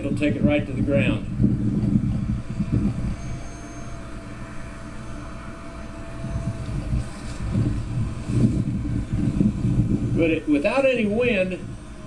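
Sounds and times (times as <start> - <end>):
distant model plane motor whine: 0.0 - 12.0
wind rumbling on microphone: 0.0 - 12.0.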